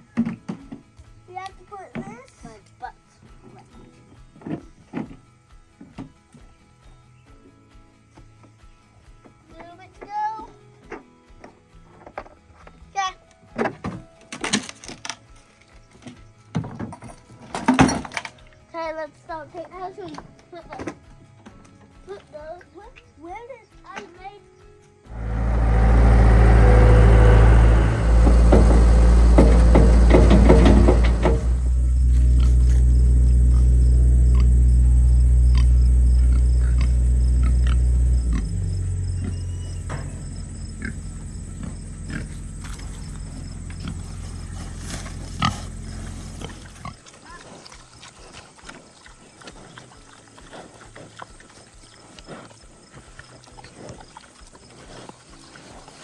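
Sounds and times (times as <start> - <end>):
pigs chewing and crunching: 0.0 - 56.0
low drone: 25.1 - 46.8.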